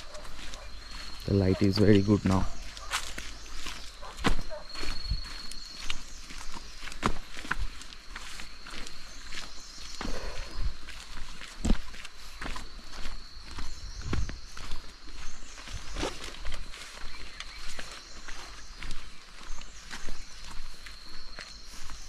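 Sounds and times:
footsteps on concrete: 0.0s - 22.0s.

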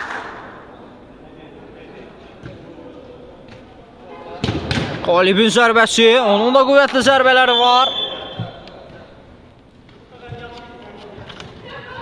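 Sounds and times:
low hall noise: 0.0s - 12.0s.

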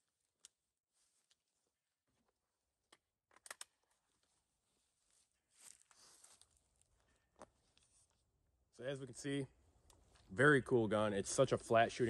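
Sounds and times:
soft rustle: 4.0s - 8.3s.

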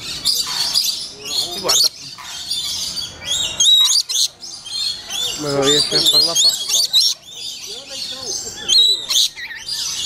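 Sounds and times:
birds chirping and squawking: 0.0s - 10.0s.

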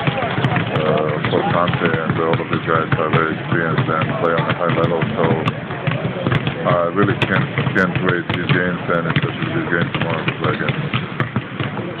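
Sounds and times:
basketballs bouncing on hardwood: 0.0s - 12.0s.

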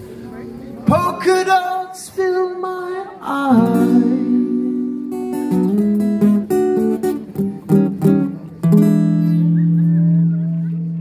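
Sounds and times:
acoustic guitar strumming: 3.5s - 11.0s.

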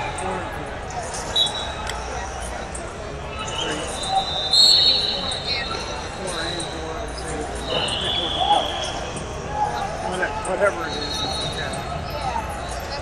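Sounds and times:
background chatter: 0.0s - 13.0s
referee's whistle blasts: 1.3s - 1.8s, 3.4s - 6.8s, 7.6s - 9.2s, 10.8s - 11.8s.

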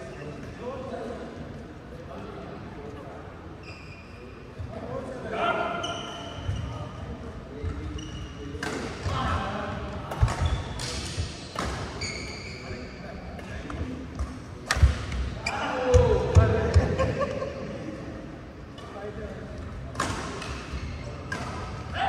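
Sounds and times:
shoes squeaking on court: 3.6s - 4.7s, 5.8s - 6.9s, 7.6s - 8.8s, 10.2s - 14.3s.

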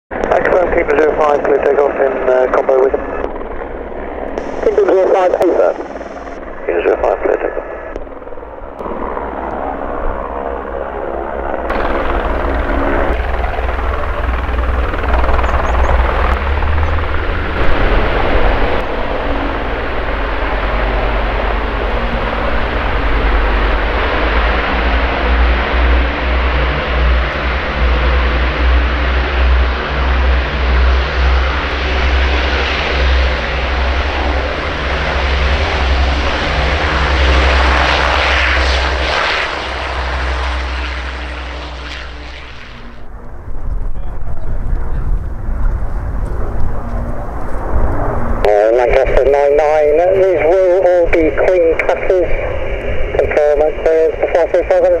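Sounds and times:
helicopter rotor beat: 0.1s - 55.0s
piston engines droning: 7.6s - 55.0s.

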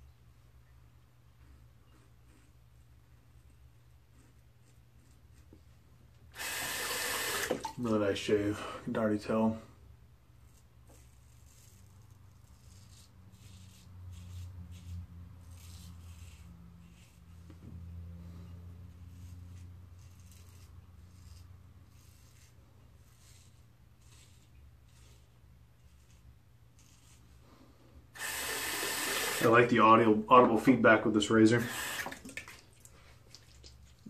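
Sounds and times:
razor scraping stubble: 10.4s - 32.4s.

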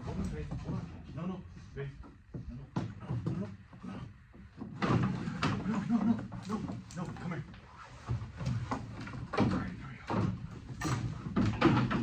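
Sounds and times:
indistinct low talk: 0.0s - 8.5s
wooden knocks and bumps: 0.0s - 12.0s.

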